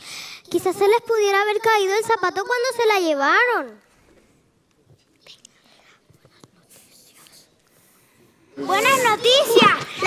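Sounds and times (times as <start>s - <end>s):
soft whispering: 3.9s - 9.3s.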